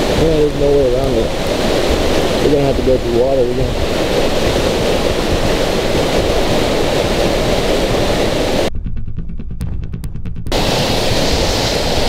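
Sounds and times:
fast creek rushing: 0:00.0 - 0:08.7, 0:10.5 - 0:12.0
microphone handling rumble: 0:00.0 - 0:12.0
wind: 0:00.0 - 0:12.0.

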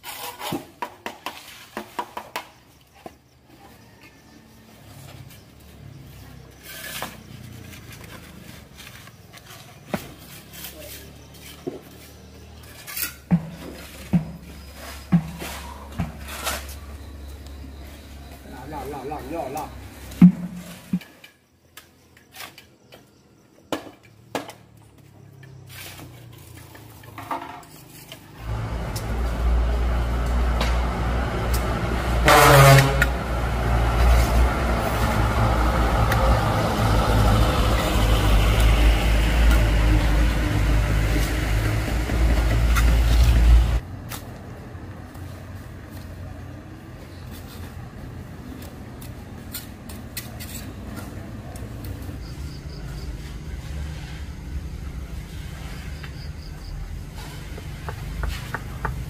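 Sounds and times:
taps and scrapes of hand work: 0:00.0 - 0:03.2, 0:57.2 - 0:59.0
vehicle engine rumbling: 0:03.2 - 0:21.6, 0:24.0 - 0:59.0.

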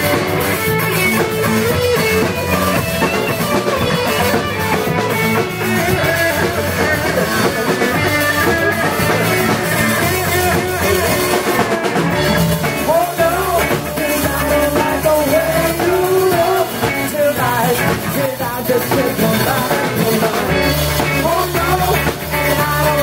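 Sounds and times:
rock band playing: 0:00.0 - 0:23.0.

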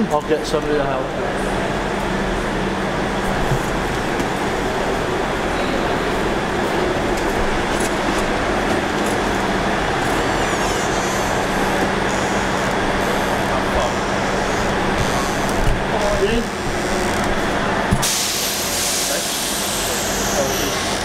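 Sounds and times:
faint voices: 0:00.0 - 0:17.9
train humming at platform: 0:00.0 - 0:21.0.

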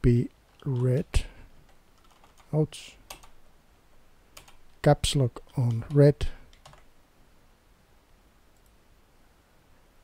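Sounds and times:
computer keyboard keystrokes: 0:02.0 - 0:02.5, 0:03.1 - 0:03.4, 0:04.4 - 0:04.6, 0:05.5 - 0:06.9.

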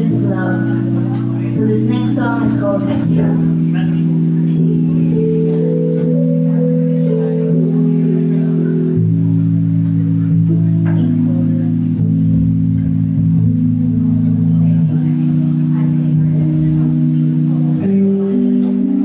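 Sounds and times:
live band playing slow chords: 0:00.0 - 0:19.0.

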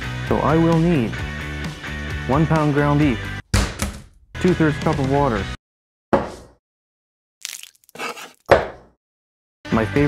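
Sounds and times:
cup clattering and water splashing: 0:07.4 - 0:08.9.

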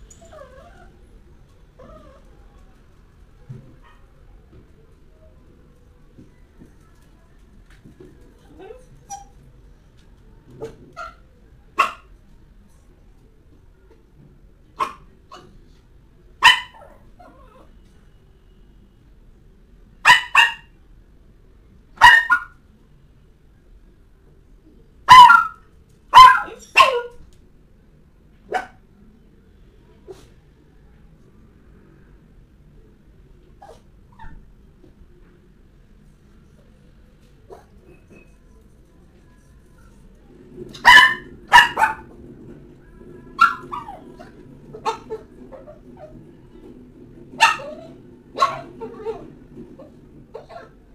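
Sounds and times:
small dog barking: 0:11.8 - 0:12.1, 0:14.8 - 0:15.5, 0:16.4 - 0:17.0, 0:20.0 - 0:20.7, 0:22.0 - 0:22.5, 0:25.1 - 0:27.1, 0:28.5 - 0:28.8, 0:40.8 - 0:42.1, 0:43.3 - 0:46.1, 0:47.4 - 0:49.3.

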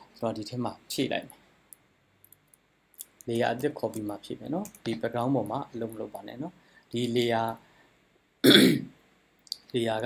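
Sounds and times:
person clearing throat: 0:08.4 - 0:08.9.

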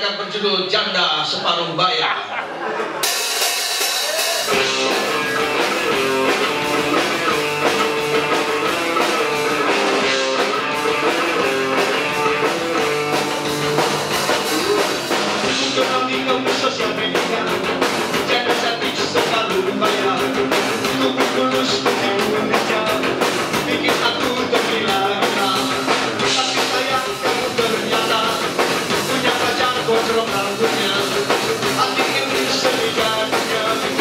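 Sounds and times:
drum kit: 0:02.6 - 0:34.0
bass guitar: 0:03.0 - 0:34.0
electric guitars: 0:03.0 - 0:34.0.

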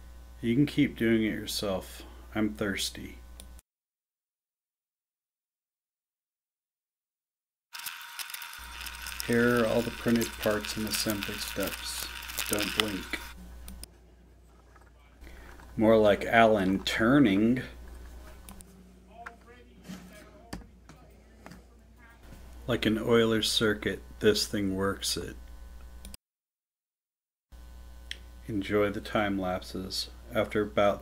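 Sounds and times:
steady low hum: 0:08.6 - 0:26.2.

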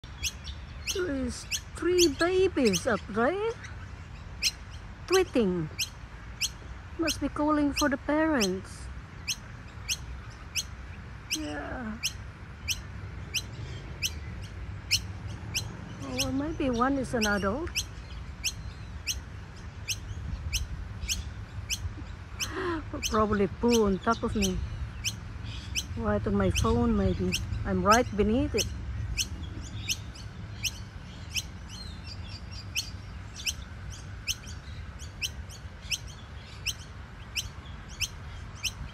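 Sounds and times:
bird chicks begging calls: 0:00.0 - 0:38.9.

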